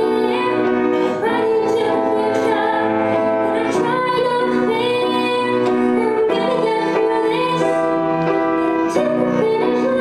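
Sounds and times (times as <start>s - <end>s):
upright piano accompaniment: 0.0s - 10.0s.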